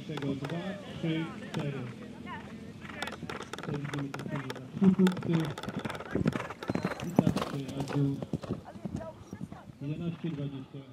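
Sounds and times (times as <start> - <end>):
horse hoofbeats galloping on turf: 0.0 - 10.9.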